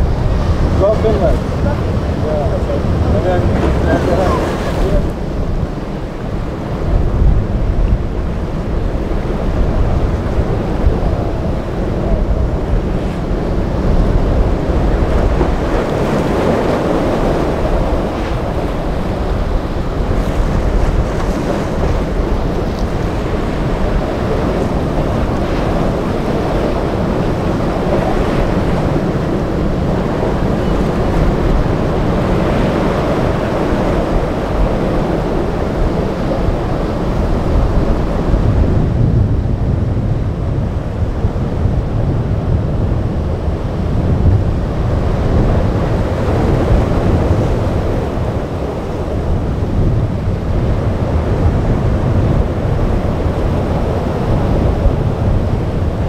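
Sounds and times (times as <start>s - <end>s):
boat engine: 0.0s - 38.8s
surf breaking: 0.0s - 38.8s
wind buffeting microphone: 0.0s - 56.0s.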